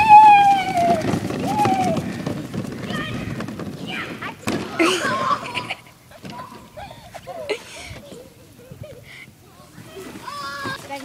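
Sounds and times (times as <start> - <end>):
plastic wagon rattling: 0.0 - 7.4
children running across grass: 0.0 - 11.0.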